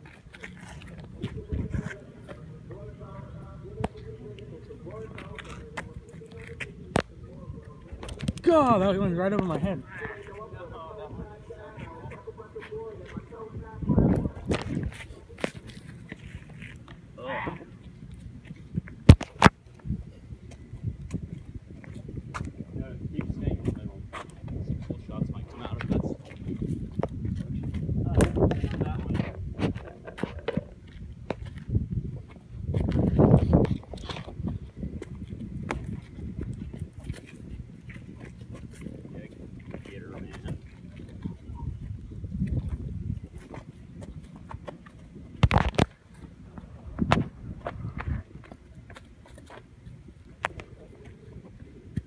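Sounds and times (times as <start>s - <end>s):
wind rumble on microphone: 0.0s - 52.0s.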